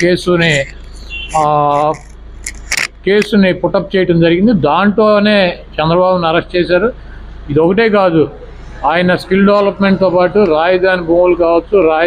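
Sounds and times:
man holding a vowel sound: 0.0s - 2.9s
faint low hum: 0.0s - 12.0s.

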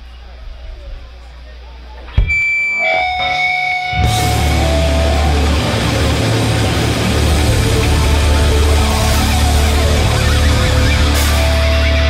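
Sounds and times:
amplifier hum: 0.0s - 12.0s
electric guitar ringing: 2.1s - 12.0s.

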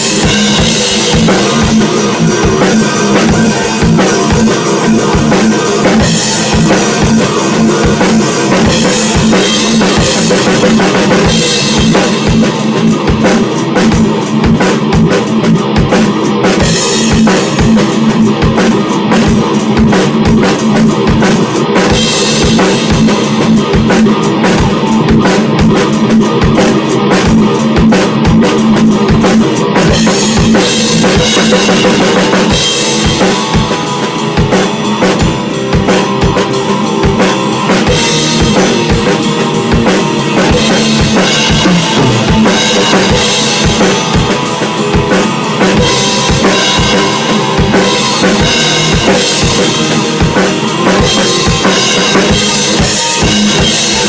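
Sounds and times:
heavy metal band playing: 0.0s - 54.0s
rapid bass drum strokes: 0.0s - 54.0s.

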